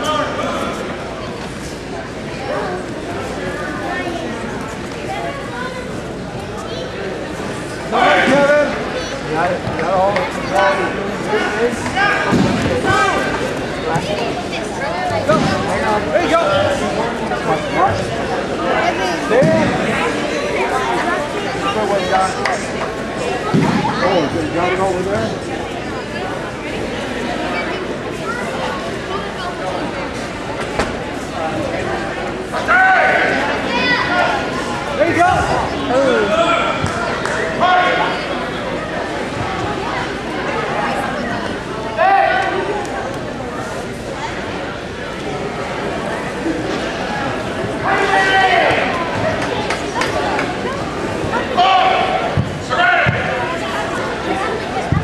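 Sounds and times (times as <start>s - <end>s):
voices shouting in echoing hall: 0.0s - 55.0s
people shouting in echoing hall: 32.5s - 38.4s, 47.8s - 49.2s, 51.3s - 53.7s.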